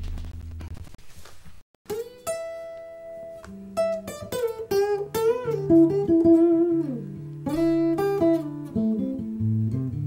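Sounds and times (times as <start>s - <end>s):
plucked blues guitar notes: 1.9s - 10.0s.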